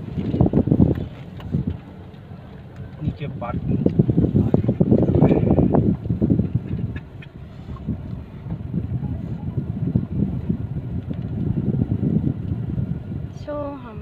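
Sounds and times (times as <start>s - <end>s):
car engine and road noise: 0.0s - 14.0s.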